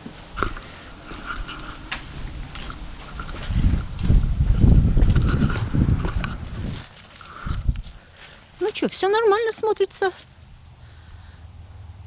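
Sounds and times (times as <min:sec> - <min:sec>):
low rumbling bumps: 0:00.0 - 0:08.2
microphone handling noise: 0:00.3 - 0:08.0.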